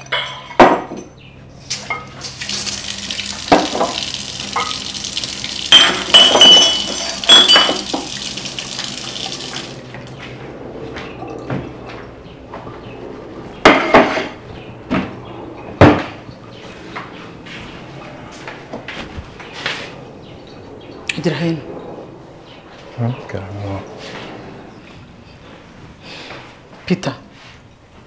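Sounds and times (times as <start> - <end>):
ceramic cups clinking: 0.0 - 1.1, 3.5 - 5.0, 5.7 - 9.6
kitchen tap running: 1.8 - 9.8.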